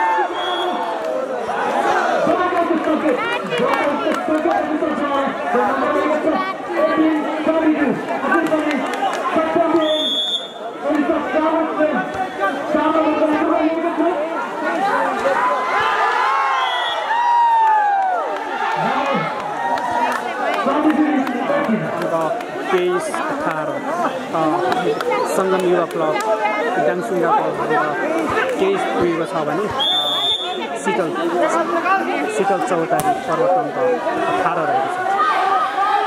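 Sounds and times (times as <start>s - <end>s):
crowd talking and shouting: 0.0s - 36.0s.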